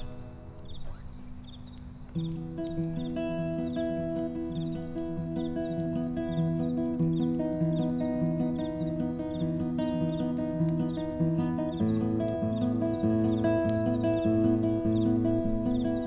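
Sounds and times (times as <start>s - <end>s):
acoustic guitar picking: 0.0s - 16.0s.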